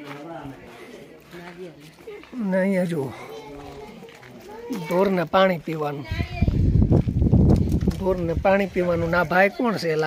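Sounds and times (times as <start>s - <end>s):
faint voices of people and children: 0.0s - 10.0s.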